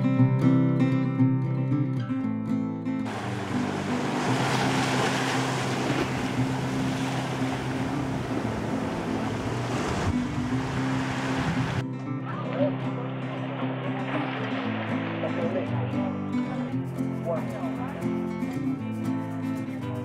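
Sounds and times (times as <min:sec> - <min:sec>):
guitar music: 0:00.0 - 0:20.0
sea surf washing on stone: 0:03.1 - 0:11.8.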